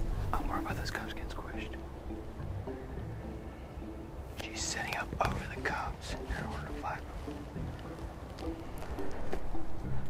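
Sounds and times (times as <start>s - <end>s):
soft background music: 0.0s - 10.0s
people whispering: 0.3s - 1.8s, 4.4s - 7.2s.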